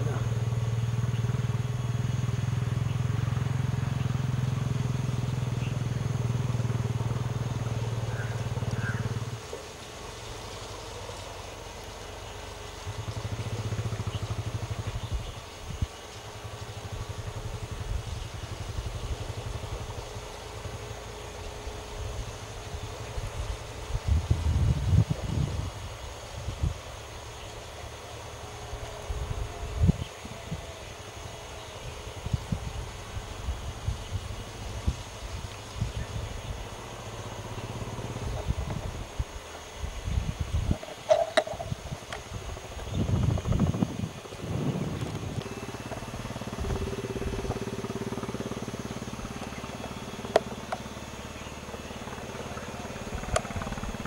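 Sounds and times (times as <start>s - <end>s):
vehicle engine idling: 0.0s - 54.0s
weak low hum: 41.6s - 54.0s.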